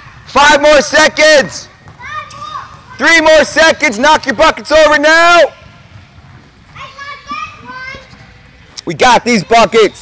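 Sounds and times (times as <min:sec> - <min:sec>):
children calling out: 0:01.9 - 0:03.2, 0:06.7 - 0:08.2.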